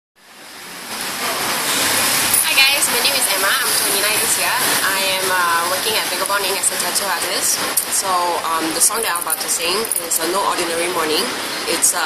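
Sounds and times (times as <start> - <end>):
steady rushing noise: 0.2 - 12.0.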